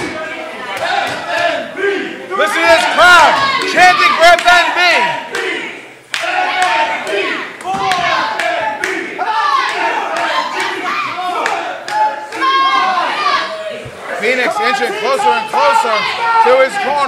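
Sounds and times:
crowd shouting and cheering: 0:00.0 - 0:17.0
claps and thuds: 0:06.1 - 0:09.0.

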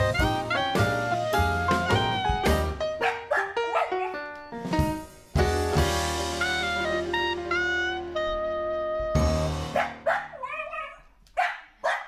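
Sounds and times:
dog barking and yelping: 0:03.0 - 0:04.3, 0:09.7 - 0:12.0.

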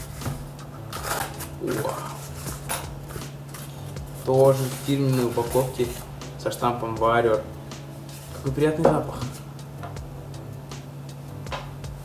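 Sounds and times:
cardboard flaps scraping and rustling: 0:00.0 - 0:06.1
low steady hum: 0:00.0 - 0:12.0.

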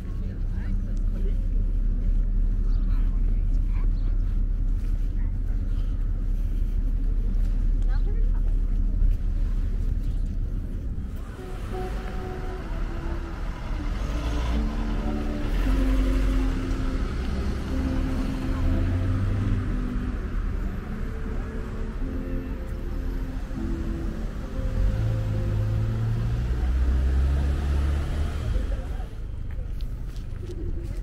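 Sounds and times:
wind rumble on microphone: 0:00.0 - 0:12.0
outdoor noise: 0:00.0 - 0:31.0
background music of held notes: 0:11.0 - 0:29.0.

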